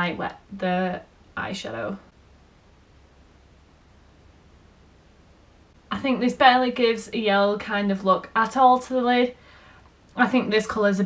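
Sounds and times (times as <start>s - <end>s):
low hum: 0.0s - 10.6s
faint steady hiss: 0.0s - 11.0s.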